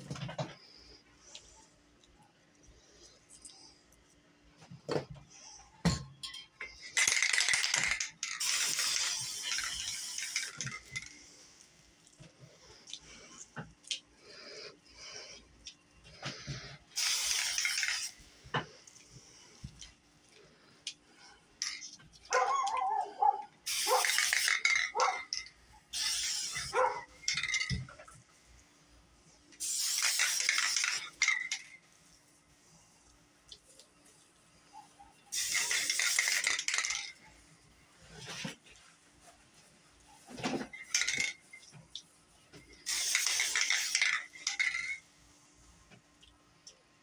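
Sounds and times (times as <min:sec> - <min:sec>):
spray paint can hissing: 0:07.0 - 0:11.1, 0:16.9 - 0:18.2, 0:23.6 - 0:25.1, 0:25.9 - 0:27.7, 0:29.6 - 0:31.7, 0:35.3 - 0:37.2, 0:42.8 - 0:45.0.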